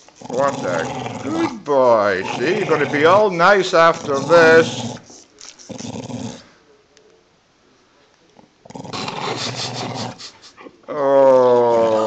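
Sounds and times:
dog growling: 0.0 - 6.5, 8.6 - 10.3, 10.9 - 12.0.

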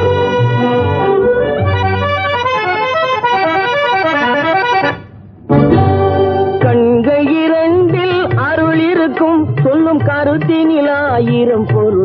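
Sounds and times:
accordion melody: 0.0 - 9.9.

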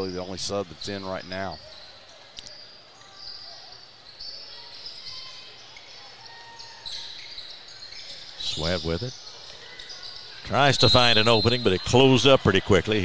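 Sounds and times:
sneaker squeaks: 0.6 - 12.2.

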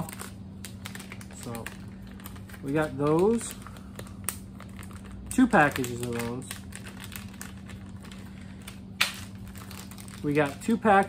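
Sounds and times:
plastic bags crinkling: 0.0 - 11.0
sharp plastic crackle: 0.0 - 11.0.

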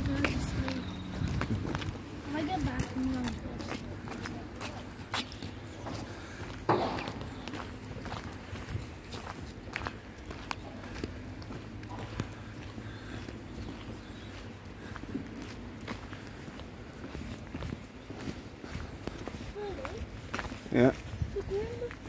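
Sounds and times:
footsteps on wet tarmac: 0.0 - 22.0.

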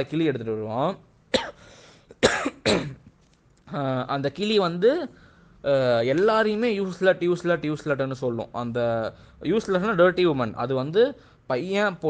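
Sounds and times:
man coughing: 1.3 - 3.1.

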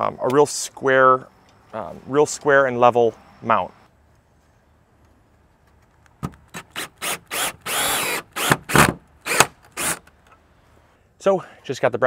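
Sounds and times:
cordless drill bursts: 6.6 - 10.1.

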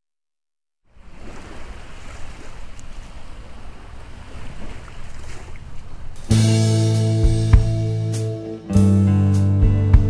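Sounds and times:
wind and water rushing along hull: 0.9 - 6.5.

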